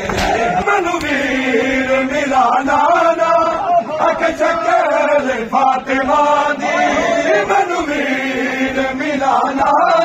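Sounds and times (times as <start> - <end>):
men chanting a mourning lament: 0.0 - 10.0.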